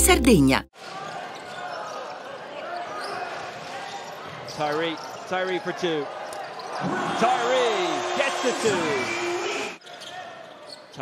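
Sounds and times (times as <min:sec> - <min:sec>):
murmur of arena crowd: 0:00.7 - 0:11.0.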